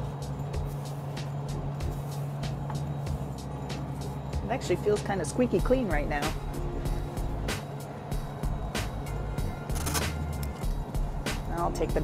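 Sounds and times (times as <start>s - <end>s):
ventilation hum: 0.0s - 12.0s
rubbing wet hair with towel: 0.1s - 4.2s.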